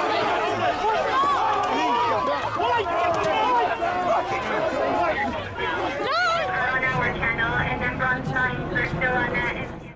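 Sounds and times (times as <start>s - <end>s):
people shouting: 0.0s - 6.7s
low background rumble: 6.4s - 9.9s.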